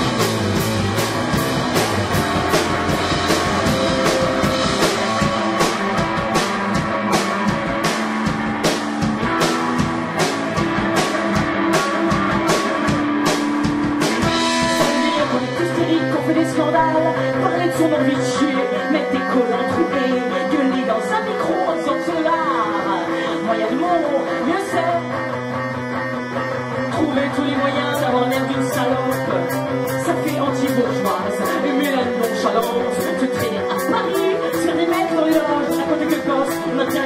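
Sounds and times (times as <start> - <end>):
live rock band playing: 0.0 - 37.0.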